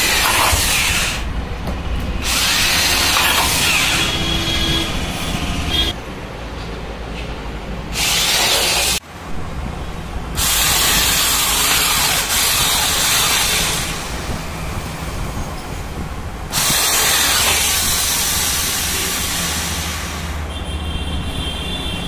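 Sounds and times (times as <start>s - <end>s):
drill boring through metal: 0.0s - 1.3s, 2.2s - 4.9s, 7.9s - 9.0s, 10.4s - 14.4s, 16.5s - 20.4s.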